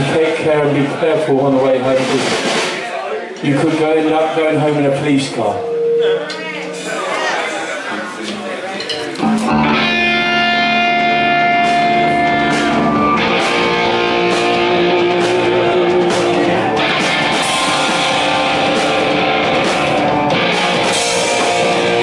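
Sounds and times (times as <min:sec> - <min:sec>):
drums and cymbals: 0:01.9 - 0:03.0, 0:09.2 - 0:22.0
electric guitar ringing chords: 0:05.5 - 0:07.2, 0:09.2 - 0:22.0.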